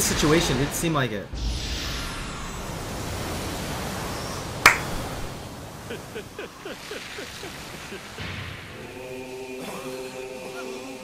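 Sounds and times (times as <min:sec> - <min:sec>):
sharp crack: 0:04.7 - 0:04.9.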